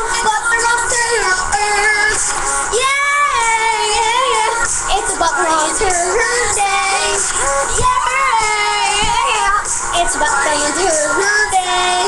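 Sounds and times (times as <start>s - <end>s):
processed high-pitched singing: 0.0s - 12.0s.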